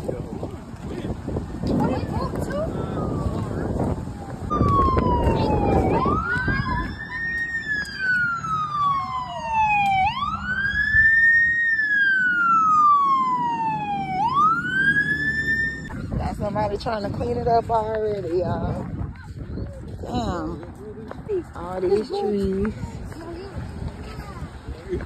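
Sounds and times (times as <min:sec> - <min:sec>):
fire engine siren wailing: 0:02.1 - 0:16.2.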